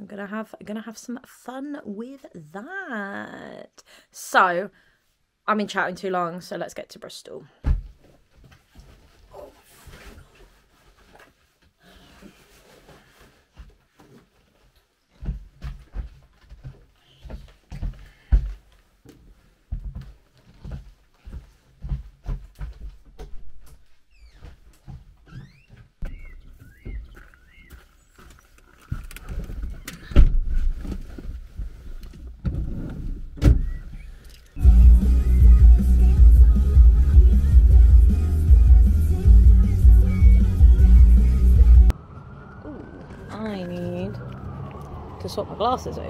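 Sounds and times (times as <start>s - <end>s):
loud music with heavy bass: 34.6s - 41.9s.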